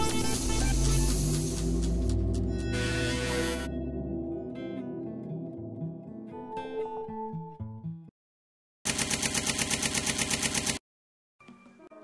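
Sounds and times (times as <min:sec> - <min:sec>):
light music: 0:00.0 - 0:07.8.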